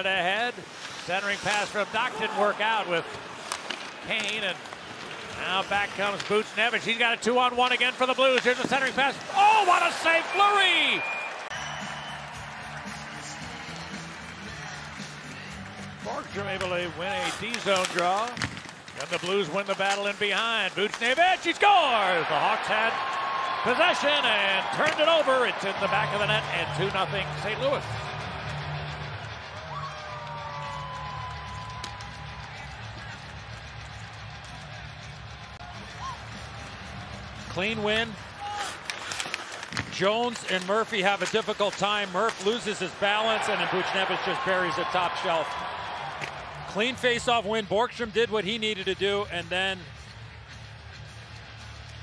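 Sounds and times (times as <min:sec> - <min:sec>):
crowd noise: 0:00.0 - 0:18.3, 0:19.0 - 0:52.0
faint music over sound system: 0:11.6 - 0:17.0.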